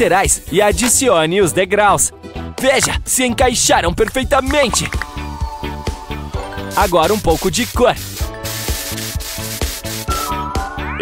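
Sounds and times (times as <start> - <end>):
background music with a beat: 0.0 - 1.2, 4.0 - 11.0
spray-paint can hissing: 4.6 - 10.4.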